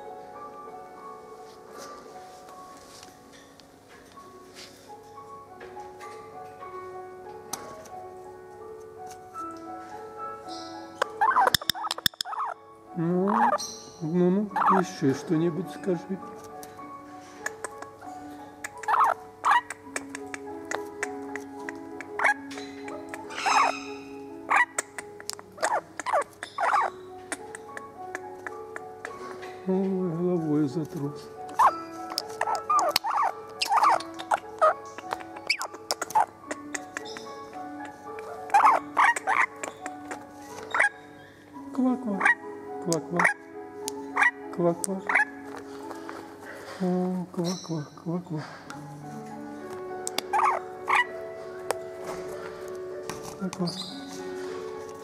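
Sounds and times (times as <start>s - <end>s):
faint background music: 0.0s - 55.0s
parrot squawking: 10.5s - 12.6s, 13.2s - 15.0s, 18.6s - 29.6s, 31.5s - 41.3s, 42.2s - 43.5s, 44.1s - 45.5s, 50.2s - 51.2s.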